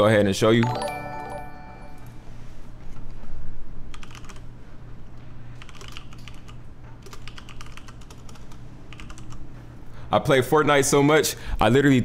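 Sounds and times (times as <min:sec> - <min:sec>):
low steady hum: 0:00.4 - 0:05.7
typing on computer keyboard: 0:03.9 - 0:04.4, 0:05.6 - 0:09.4.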